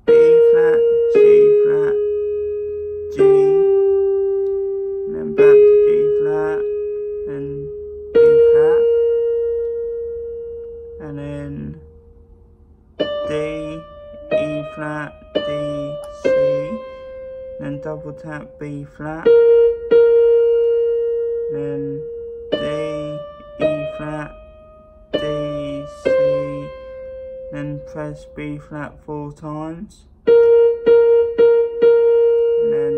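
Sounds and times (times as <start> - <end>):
electronic keyboard held tone: 0.0 - 32.9.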